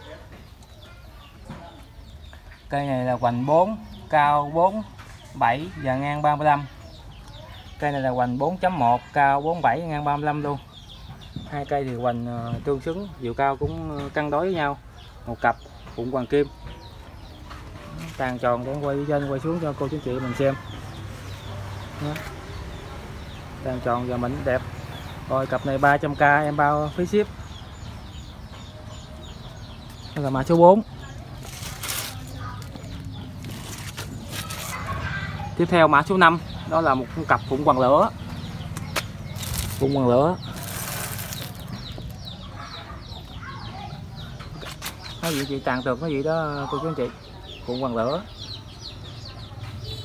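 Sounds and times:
birds chirping: 0:00.0 - 0:50.0.

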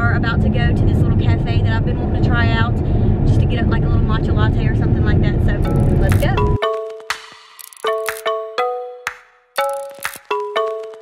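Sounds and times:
car road and engine rumble: 0:00.0 - 0:06.6
woman talking: 0:00.0 - 0:06.6.

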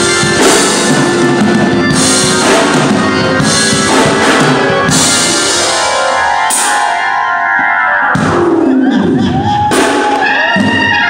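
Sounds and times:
organ playing held chords: 0:00.0 - 0:11.0.

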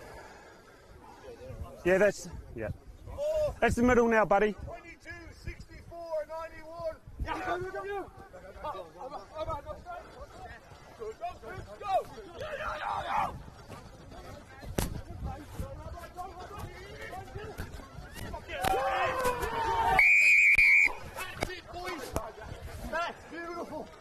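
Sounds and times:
players calling: 0:04.9 - 0:24.0
players shouting: 0:06.2 - 0:14.2, 0:16.0 - 0:22.3
referee's whistle blast: 0:20.0 - 0:21.0.

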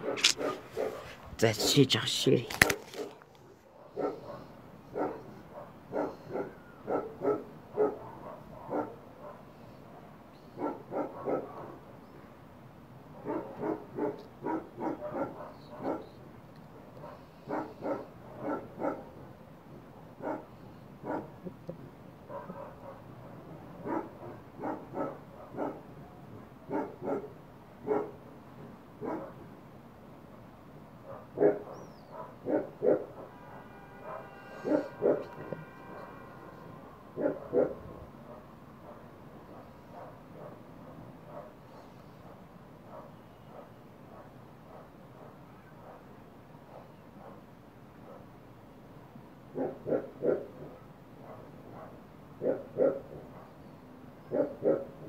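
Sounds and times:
dog barking: 0:00.0 - 0:01.8, 0:02.6 - 0:11.9, 0:13.1 - 0:19.3, 0:20.0 - 0:21.5, 0:22.3 - 0:28.2, 0:29.0 - 0:29.5, 0:31.0 - 0:48.3, 0:49.5 - 0:55.0.

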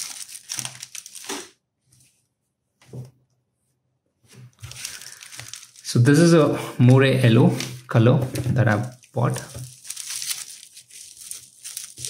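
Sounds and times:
paper crumpling: 0:00.0 - 0:01.6, 0:04.5 - 0:06.4, 0:08.6 - 0:12.0.

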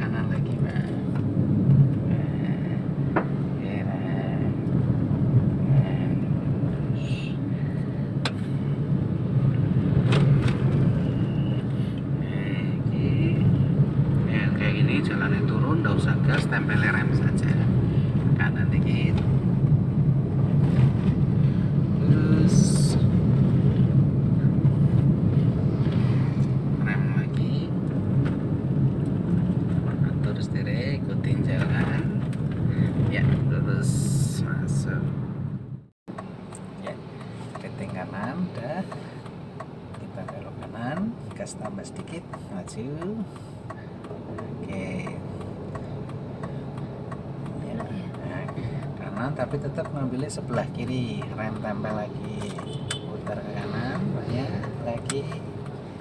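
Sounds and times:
car engine and tyres hum: 0:00.0 - 0:56.0.

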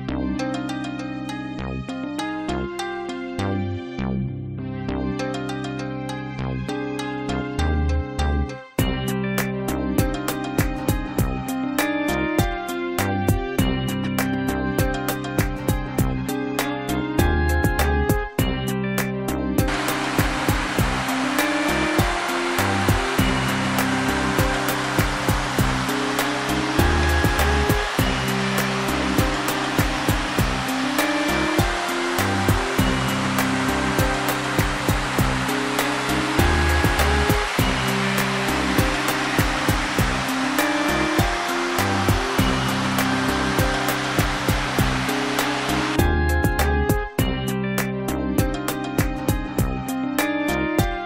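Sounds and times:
plucked guitar music: 0:19.6 - 0:50.2
waterfall rushing: 0:19.7 - 0:46.0.

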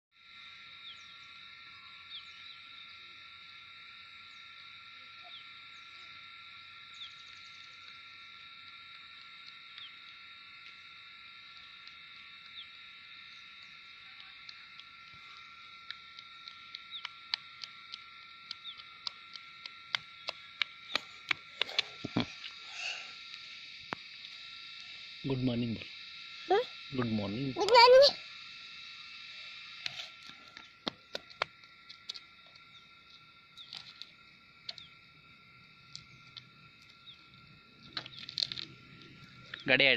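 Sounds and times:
sharp clicks: 0:15.8 - 0:22.6.

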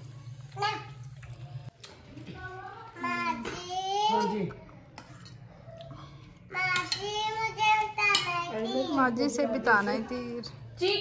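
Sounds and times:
child's sing-song voice: 0:06.5 - 0:08.9.

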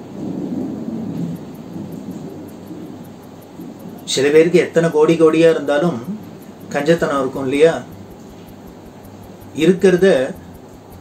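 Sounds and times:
low rumbling noise: 0:00.0 - 0:11.0.

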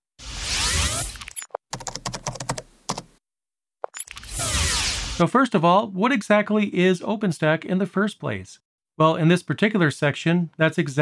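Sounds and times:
keyboard typing clicks: 0:01.3 - 0:03.1.

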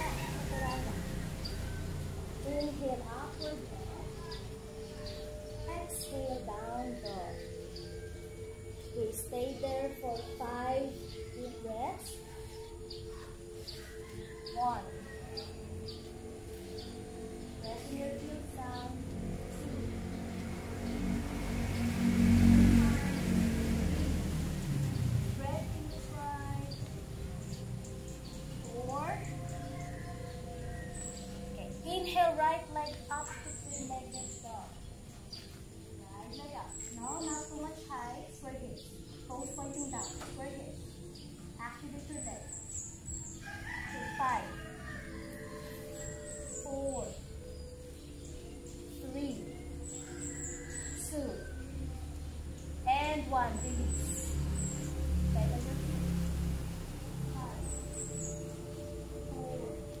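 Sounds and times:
rooster crowing: 0:00.0 - 0:02.4, 0:29.4 - 0:31.4, 0:43.2 - 0:46.6, 0:49.9 - 0:52.1
small birds chirping: 0:00.0 - 1:00.0
vehicle passing by: 0:00.0 - 1:00.0.

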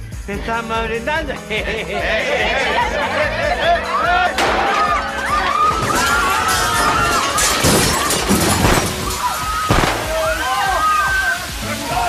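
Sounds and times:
people shouting in alarm: 0:02.2 - 0:12.0
breaking wood and glass crashes: 0:04.3 - 0:11.0
water spray hissing: 0:07.9 - 0:12.0.

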